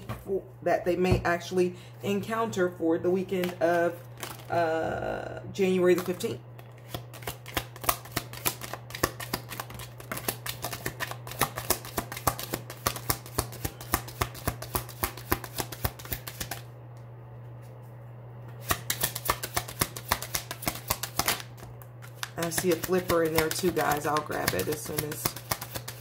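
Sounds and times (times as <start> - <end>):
steady low hum: 0.0 - 26.0
cards being shuffled: 3.4 - 4.6, 5.8 - 16.7, 18.6 - 26.0.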